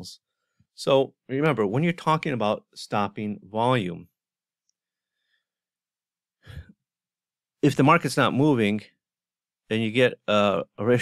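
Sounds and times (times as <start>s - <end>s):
man breathing: 6.4s - 6.8s.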